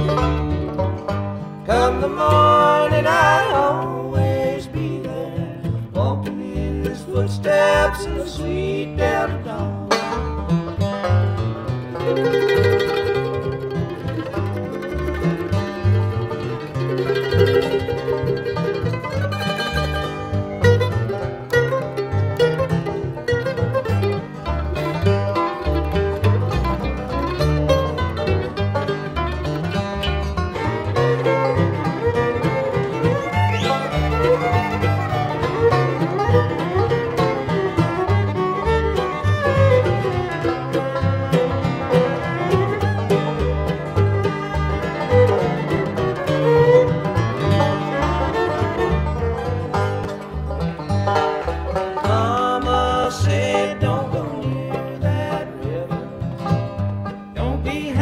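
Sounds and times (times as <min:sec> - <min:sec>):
acoustic guitar: 0:00.0 - 0:58.0
banjo: 0:00.0 - 0:58.0
fiddle: 0:00.0 - 0:58.0
mandolin: 0:00.0 - 0:58.0
upright bass: 0:00.0 - 0:58.0.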